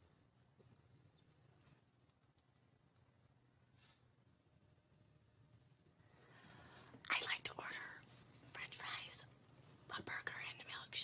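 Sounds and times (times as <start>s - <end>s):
person whispering: 7.1s - 9.3s, 9.9s - 11.0s.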